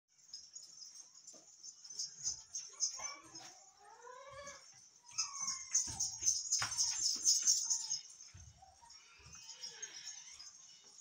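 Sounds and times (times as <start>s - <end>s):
high-pitched chirping: 0.8s - 11.0s.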